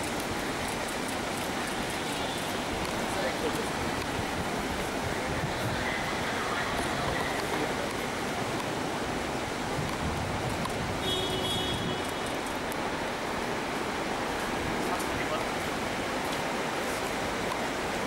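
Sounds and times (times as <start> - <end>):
steady noisy hiss: 0.0 - 18.0.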